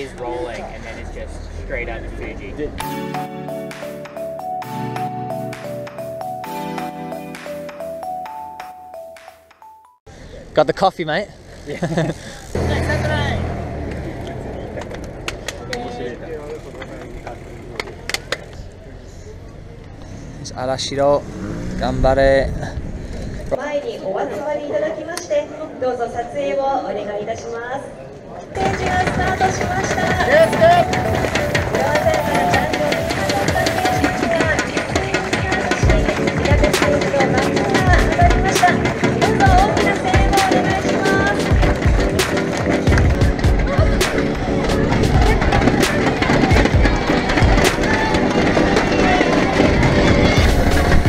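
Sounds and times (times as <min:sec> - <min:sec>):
melody over ticking percussion: 0:02.8 - 0:10.0, 0:29.7 - 0:50.6
low vehicle engine rumble: 0:11.2 - 0:20.5.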